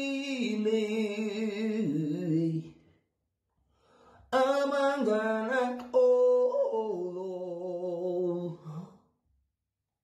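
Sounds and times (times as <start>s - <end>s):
man singing unaccompanied: 0.0s - 2.9s, 4.2s - 9.1s.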